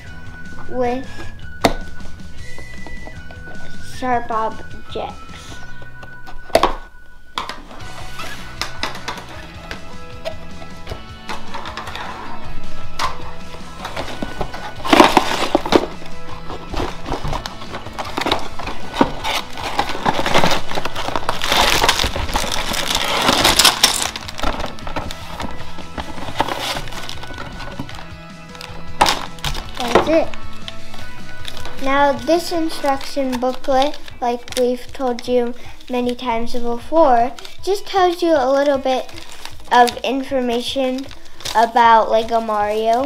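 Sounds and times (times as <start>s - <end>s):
background music: 0.0s - 43.0s
cardboard box being opened: 13.8s - 28.0s
plastic bricks rattling: 13.8s - 28.0s.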